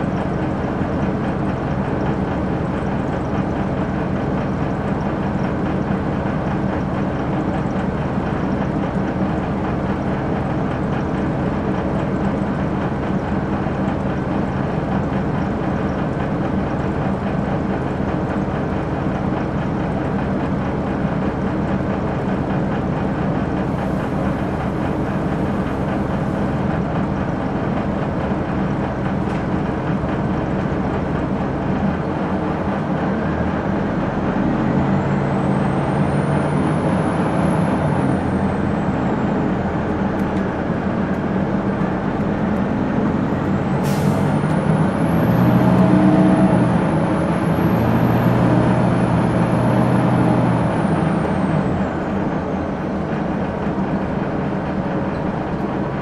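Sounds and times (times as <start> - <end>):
diesel bus engine running: 0.0 - 56.0.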